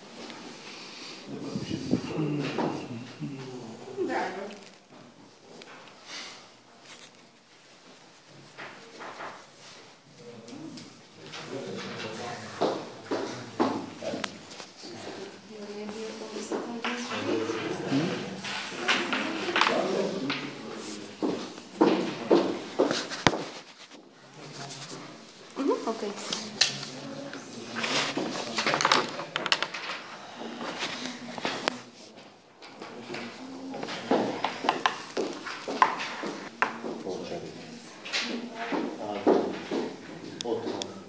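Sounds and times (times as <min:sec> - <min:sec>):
murmuring voices: 0:00.9 - 0:04.7, 0:10.2 - 0:23.2
muffled voices: 0:01.0 - 0:04.6.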